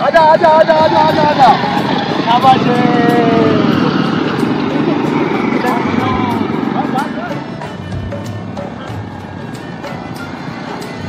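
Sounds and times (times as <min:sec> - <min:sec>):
men shouting: 0:00.0 - 0:07.3
small motorcycle engine running: 0:00.2 - 0:11.0.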